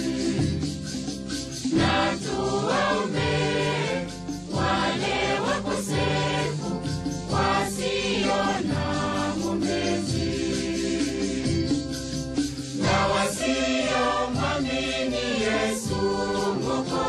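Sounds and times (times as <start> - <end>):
voices singing a hymn: 0.0 - 0.8, 1.6 - 12.0, 12.7 - 17.0
instrumental accompaniment: 0.0 - 17.0.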